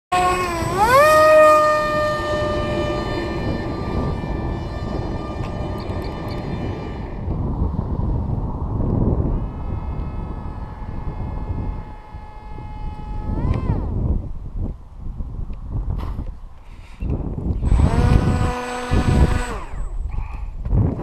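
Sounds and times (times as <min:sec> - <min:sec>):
electric motor and propeller whining: 0:00.1 - 0:14.6, 0:17.0 - 0:21.0
wind rumble on microphone: 0:00.1 - 0:21.0.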